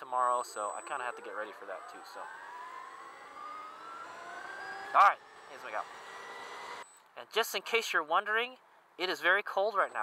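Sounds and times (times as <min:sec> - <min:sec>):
electric motorcycle motor whine: 0:00.3 - 0:07.0.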